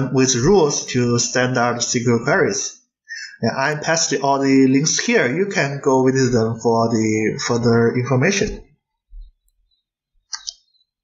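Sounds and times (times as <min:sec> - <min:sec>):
quick clicks: 0:10.3 - 0:10.7.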